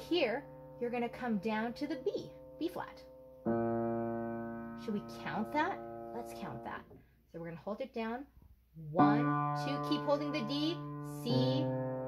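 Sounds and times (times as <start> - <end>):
piano notes ringing: 0.0 - 6.9, 8.8 - 12.0.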